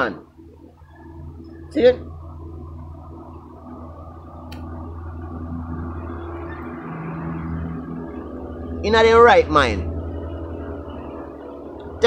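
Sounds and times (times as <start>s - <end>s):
low hum with faint tones: 0.0s - 12.0s
sharp click: 4.5s - 4.7s.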